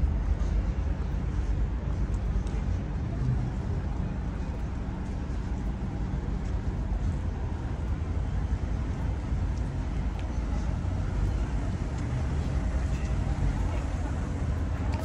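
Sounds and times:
car traffic rumbling: 0:00.0 - 0:15.0.

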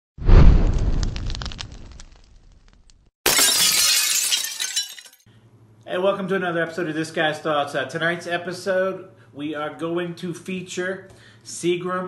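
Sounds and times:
glass shattering: 0:03.2 - 0:05.2.

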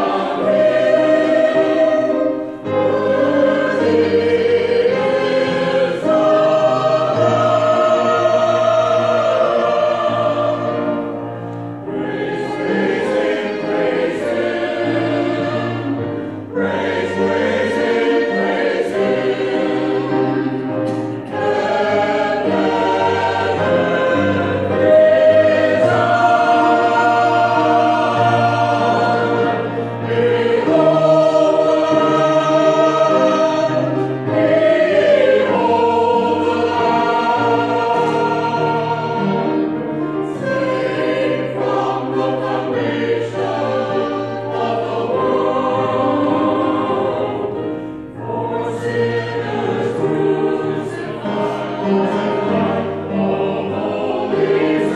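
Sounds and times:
mixed choir singing: 0:00.0 - 0:54.9
piano accompaniment: 0:00.0 - 0:54.9.

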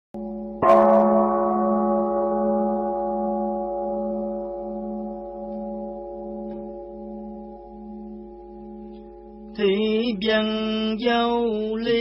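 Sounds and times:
droning musical tone: 0:00.2 - 0:12.0
large bell ringing: 0:00.2 - 0:12.0.

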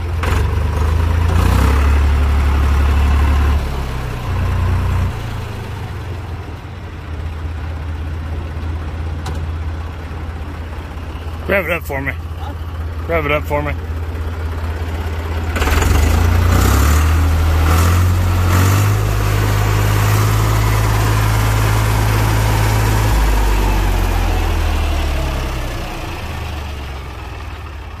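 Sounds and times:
tractor diesel engine revving: 0:00.0 - 0:28.0.

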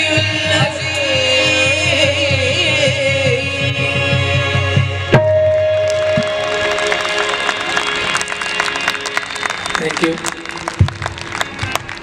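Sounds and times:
audience clapping: 0:05.8 - 0:12.0.

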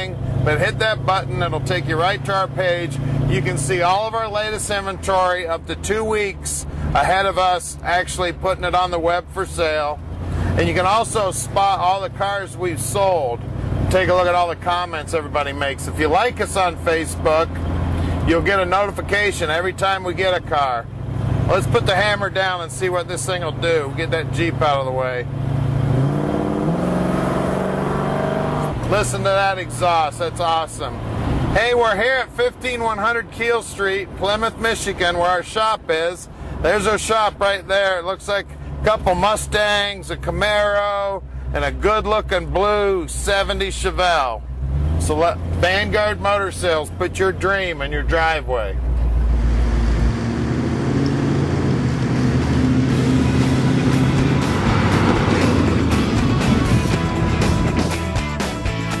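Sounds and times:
car engine accelerating hard: 0:00.0 - 0:31.6, 0:43.9 - 0:47.4, 0:48.0 - 0:58.2
road noise: 0:00.0 - 0:59.0
music track: 0:53.1 - 0:59.0.

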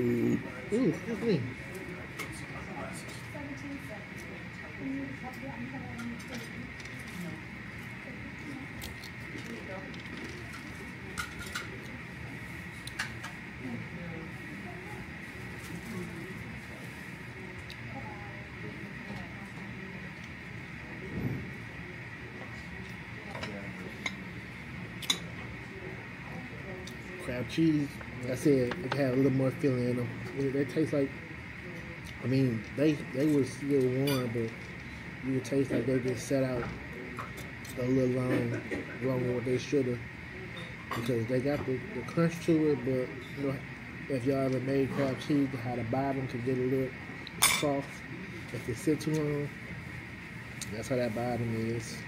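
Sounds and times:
faint high hum: 0:00.0 - 0:52.0
murmur of background voices: 0:00.0 - 0:52.0.

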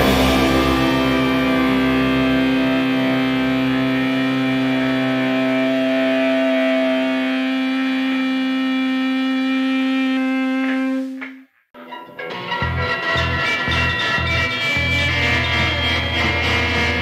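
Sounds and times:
distorted electric guitar chord: 0:00.0 - 0:10.1, 0:11.8 - 0:17.0
low bass notes: 0:00.0 - 0:11.2, 0:12.1 - 0:17.0.

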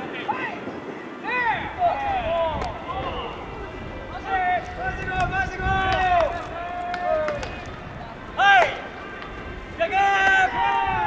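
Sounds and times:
players shouting long calls: 0:00.0 - 0:11.0.

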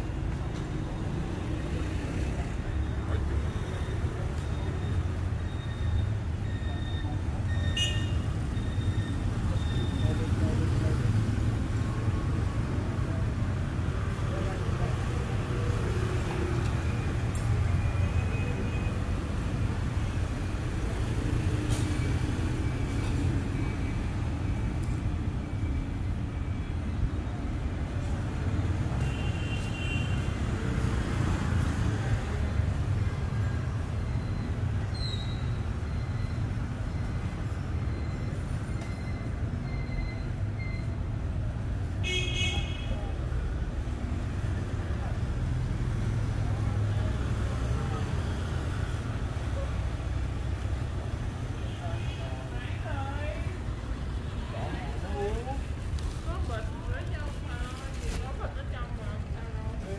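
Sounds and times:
motorbike traffic rumble: 0:00.0 - 0:59.9.

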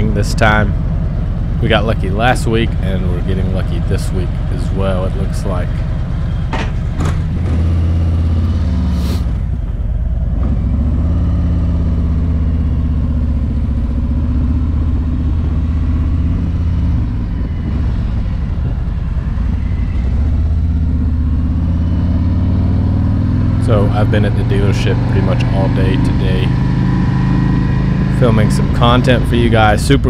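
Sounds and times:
motorcycle engine rumbling: 0:00.0 - 0:30.0.

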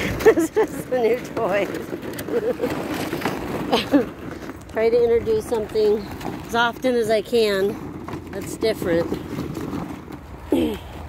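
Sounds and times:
plastic balls clattering: 0:00.0 - 0:10.6.

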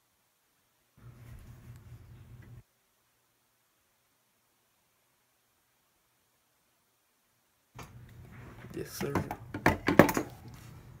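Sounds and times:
plastic lid knocks and clunks: 0:09.0 - 0:10.3.

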